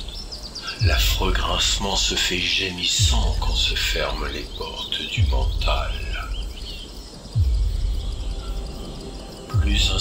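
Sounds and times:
bird chirps: 0.0 - 10.0
steady low rumble: 0.6 - 10.0.

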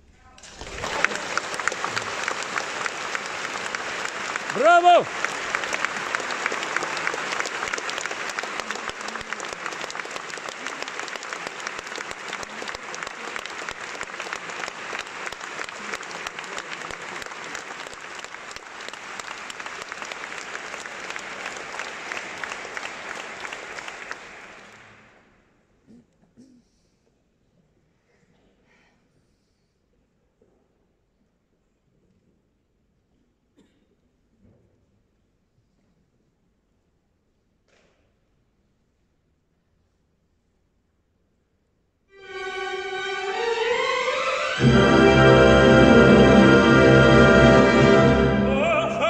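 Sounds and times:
audience applauding: 0.4 - 25.2, 42.2 - 49.0
orchestral music: 42.2 - 49.0.

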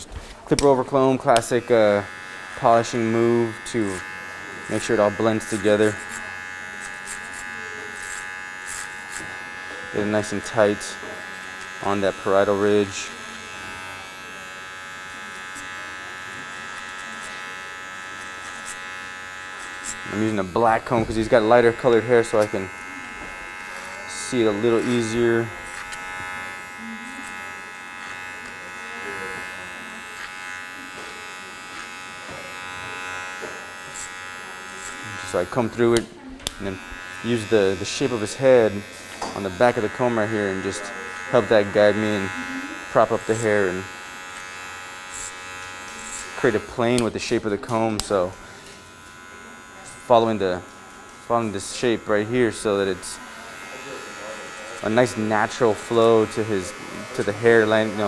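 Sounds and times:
electric hair clipper buzzing: 0.3 - 58.0.

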